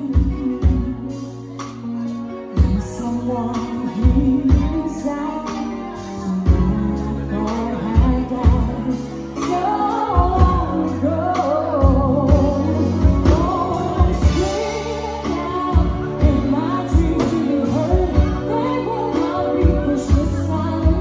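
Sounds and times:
woman singing: 0:00.0 - 0:01.8, 0:02.5 - 0:21.0
live band playing pop ballad: 0:00.0 - 0:21.0.

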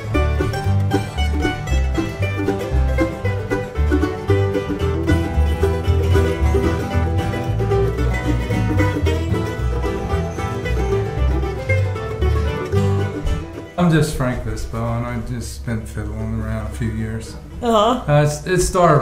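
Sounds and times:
bluegrass string band playing: 0:00.0 - 0:17.7.

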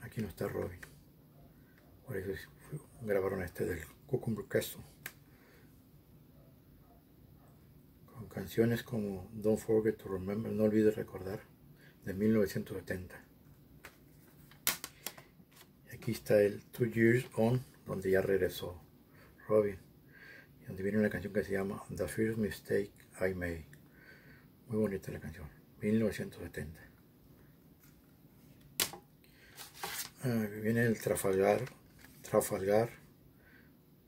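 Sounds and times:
cd case clacking: 0:13.8 - 0:15.2, 0:28.8 - 0:29.0
plastic case clicks: 0:28.8 - 0:29.0.

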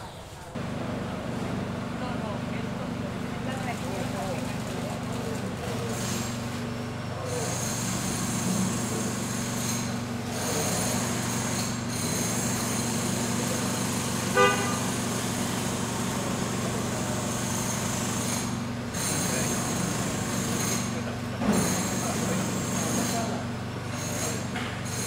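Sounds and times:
vehicle engines droning: 0:00.5 - 0:25.0
short car horn toot: 0:14.3 - 0:14.9.

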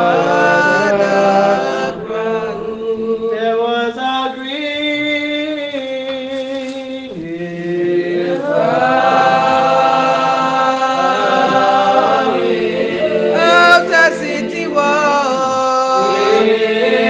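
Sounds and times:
congregation singing a hymn: 0:00.0 - 0:17.0
high voice singing: 0:06.3 - 0:17.0.

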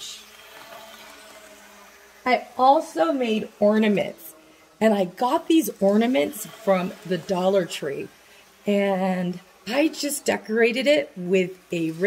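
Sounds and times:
faint steady hum: 0:00.0 - 0:12.0
soft hiss: 0:00.0 - 0:12.0.

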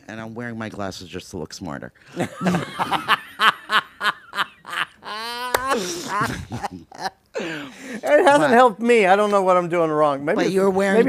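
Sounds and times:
people chuckling: 0:02.1 - 0:08.4.

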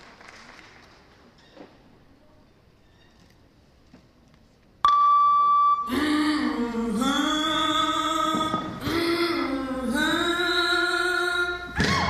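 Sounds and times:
electronic beep: 0:04.9 - 0:06.0
music with sung vocal: 0:05.8 - 0:12.0.

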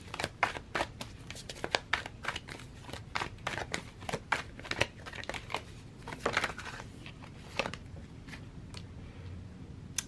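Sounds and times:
cards being shuffled: 0:00.0 - 0:08.4.

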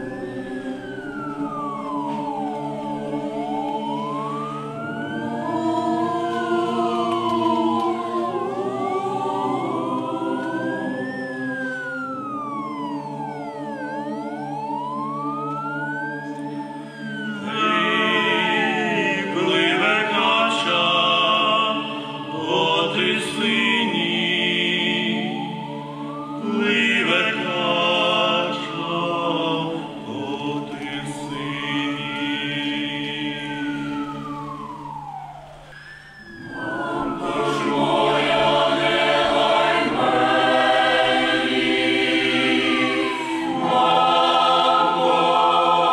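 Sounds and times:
chanted singing: 0:00.0 - 0:45.9
choir holding sustained chords: 0:00.0 - 0:45.9
siren wailing: 0:00.0 - 0:45.9.

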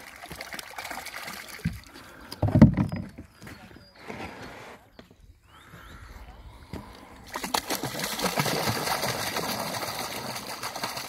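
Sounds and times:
water splashing: 0:00.0 - 0:02.2, 0:07.2 - 0:11.0.

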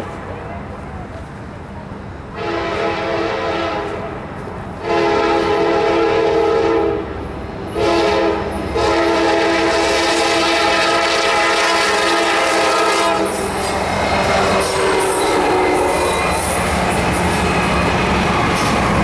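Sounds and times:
train engines and wheels rumbling: 0:00.0 - 0:19.0
locomotive horn blasts: 0:02.3 - 0:04.1, 0:04.8 - 0:07.1, 0:07.7 - 0:13.6, 0:14.2 - 0:16.7.

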